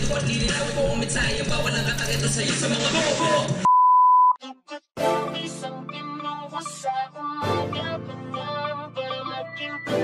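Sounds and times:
rap music: 0.0s - 3.7s, 4.4s - 10.0s.

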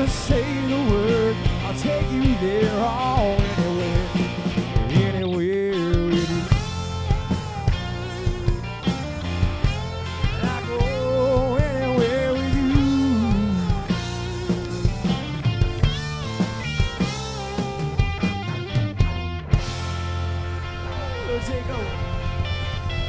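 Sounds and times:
bending electric guitar lead: 0.0s - 23.0s
live rock band playing: 0.0s - 23.0s.

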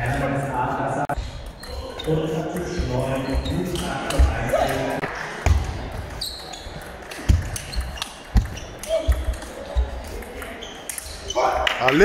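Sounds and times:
hubbub of voices and play: 0.0s - 12.0s.

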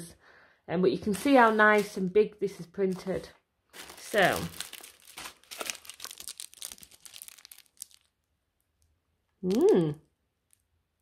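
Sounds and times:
plastic bags crinkling: 1.0s - 2.1s, 2.9s - 8.3s.

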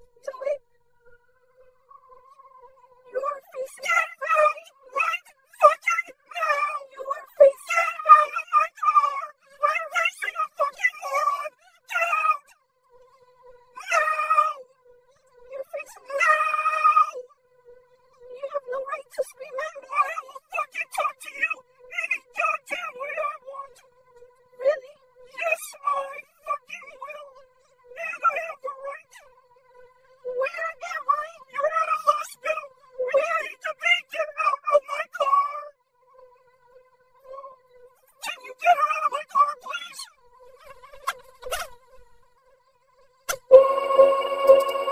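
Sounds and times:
cartoon voice wailing: 3.2s - 12.4s, 13.8s - 14.6s, 15.6s - 17.2s, 18.5s - 23.7s, 24.6s - 27.2s, 28.0s - 29.2s, 30.4s - 35.6s, 38.2s - 40.1s
steady electronic hum: 43.3s - 44.9s.

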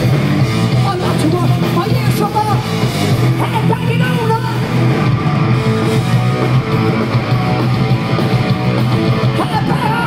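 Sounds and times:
punk rock band playing: 0.0s - 10.0s.

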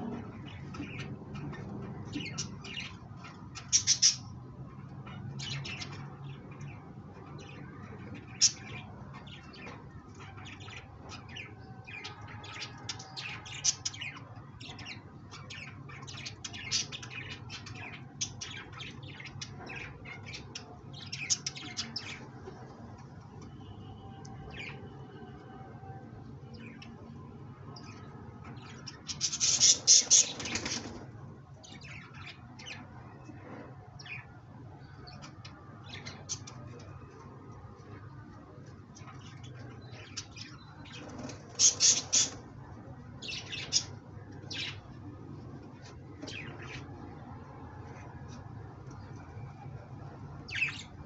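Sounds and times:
small birds chirping: 0.0s - 25.0s, 26.4s - 51.0s
pigeons chirping: 28.6s - 32.9s, 39.0s - 45.0s.

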